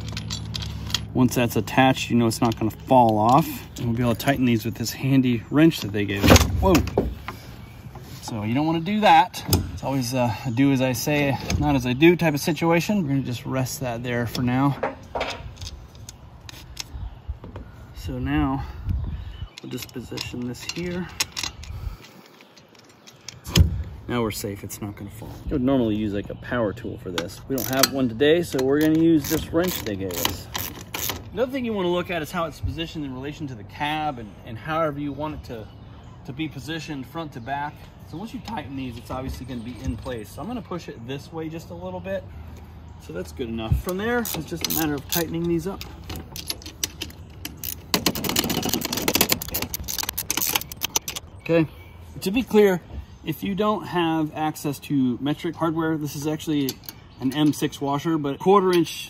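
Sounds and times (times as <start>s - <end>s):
handling of metal hardware: 0.0s - 1.2s, 19.5s - 23.9s, 43.8s - 51.4s
wrench clicking on metal nuts: 27.2s - 31.3s, 43.9s - 51.2s.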